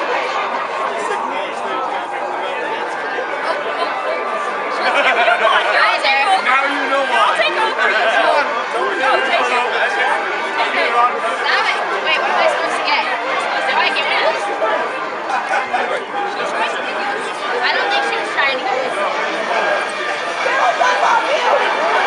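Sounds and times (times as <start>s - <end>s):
crowd chatter: 0.0s - 22.0s.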